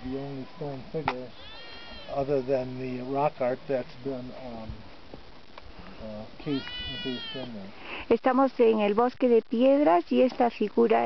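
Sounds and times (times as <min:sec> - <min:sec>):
high-pitched animal call: 0:00.0 - 0:02.9, 0:06.4 - 0:07.6.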